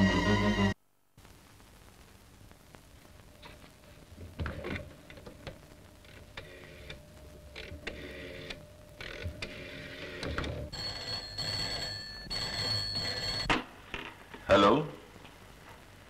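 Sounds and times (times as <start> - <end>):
intermittent buzzing: 0.0 - 16.0
telephone bell ringing: 9.7 - 13.6.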